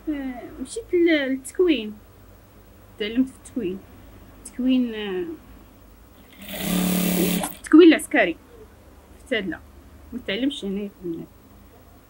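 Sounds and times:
sewing machine stitching: 6.3 - 7.6.

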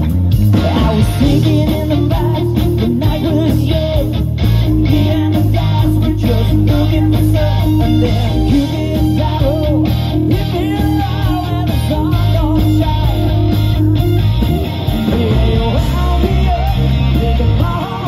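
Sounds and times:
rock band playing live: 0.0 - 18.0.

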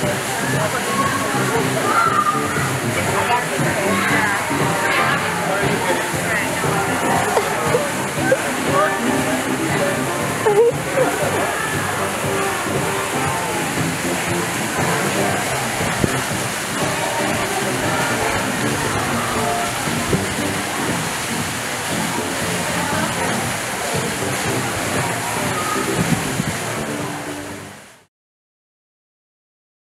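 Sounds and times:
indistinct voices: 0.0 - 27.8
music: 0.0 - 28.1
running water rushing: 0.0 - 28.1.

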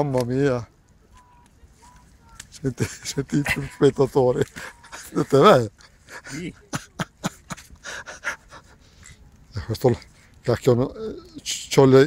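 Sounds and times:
breathy puffs: 7.6 - 9.2.

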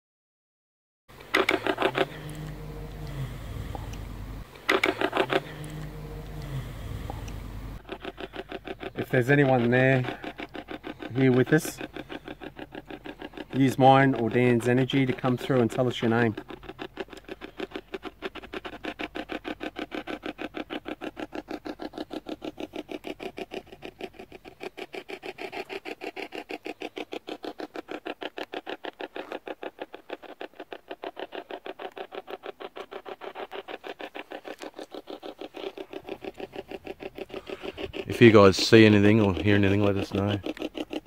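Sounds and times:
spirit box chopping static: 1.1 - 25.7, 32.0 - 41.0.

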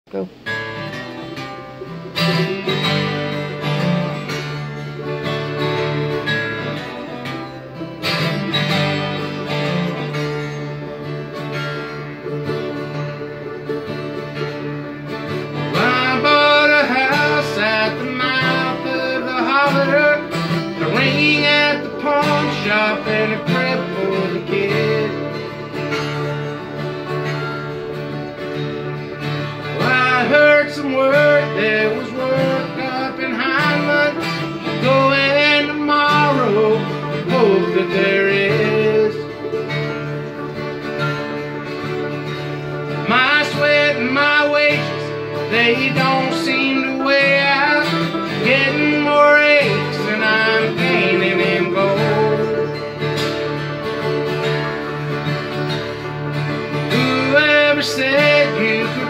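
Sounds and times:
person saying go: 0.0 - 0.4
acoustic guitar: 0.1 - 59.0
mandolin: 0.1 - 59.0
man singing: 15.5 - 25.8, 29.7 - 39.6, 42.9 - 53.0, 56.8 - 59.0.

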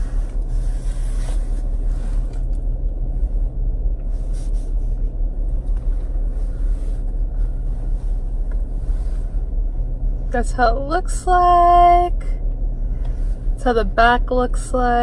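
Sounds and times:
car engine idling from inside: 0.0 - 15.0.

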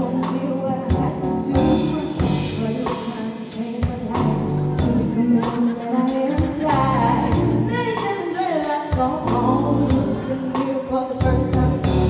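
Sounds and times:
band with bass and drums: 0.0 - 12.0
woman singing into a microphone: 0.0 - 12.0.

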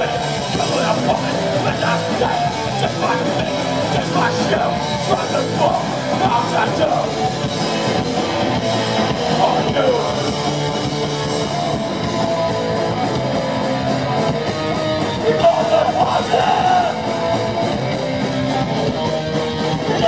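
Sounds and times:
person singing: 0.0 - 8.0, 9.1 - 10.4, 15.0 - 17.5, 19.6 - 20.0
rock band playing live: 0.0 - 20.0.

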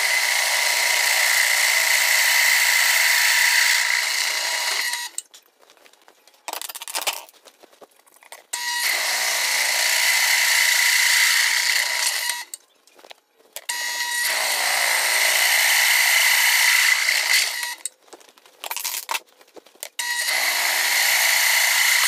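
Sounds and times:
drill press whining through steel: 0.0 - 5.2, 8.6 - 12.6, 13.7 - 17.9, 20.0 - 22.0.

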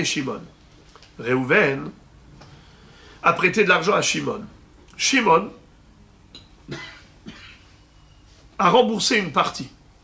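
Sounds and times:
man coughing quietly: 6.7 - 7.8.

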